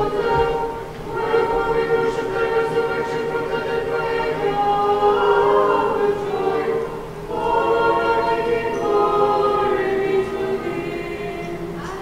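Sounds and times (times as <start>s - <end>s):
choir chanting a cappella: 0.0s - 12.0s.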